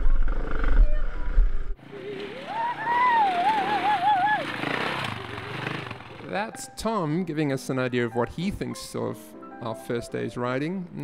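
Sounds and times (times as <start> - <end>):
man howling whoop: 2.2 - 4.9.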